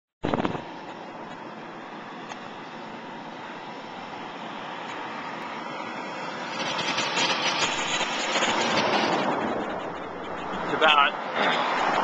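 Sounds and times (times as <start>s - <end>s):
air and road noise: 0.2s - 12.0s
vehicle passing close by: 1.8s - 12.0s.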